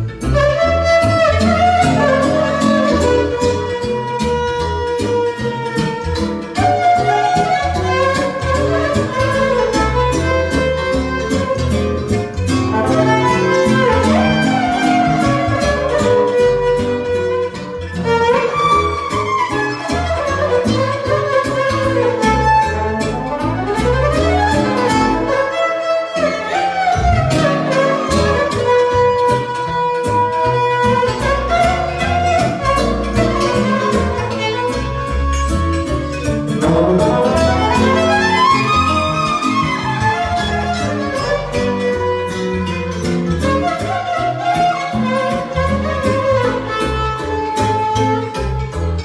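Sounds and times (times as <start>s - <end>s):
bass: 0.0s - 49.0s
violin playing lively melody: 0.0s - 49.0s
steady beat: 36.6s - 40.6s.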